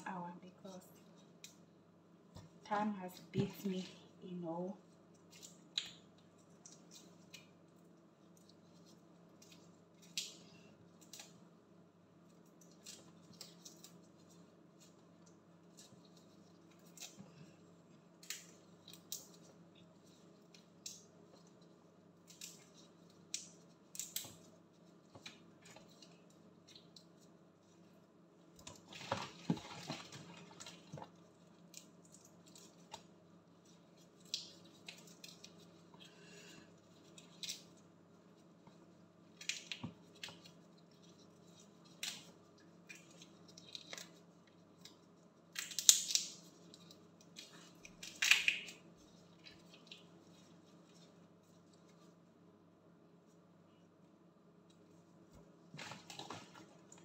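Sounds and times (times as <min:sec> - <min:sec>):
faint low hum: 0:00.0 - 0:57.0.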